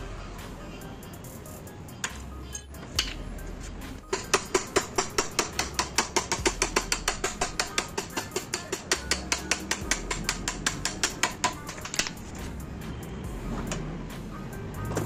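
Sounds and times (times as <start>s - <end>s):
ratchet wrench clicking: 4.1s - 12.2s.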